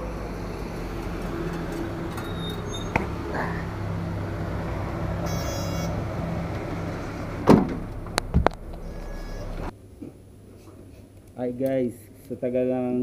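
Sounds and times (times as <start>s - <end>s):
minibus engine idling: 0.0s - 9.7s
street traffic: 0.0s - 9.7s.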